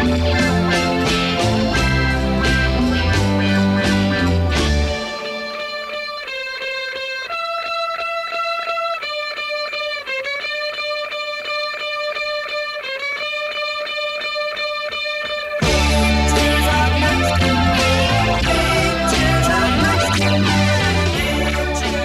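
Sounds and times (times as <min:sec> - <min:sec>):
electric guitar with pulsing effect: 0:00.0 - 0:22.0.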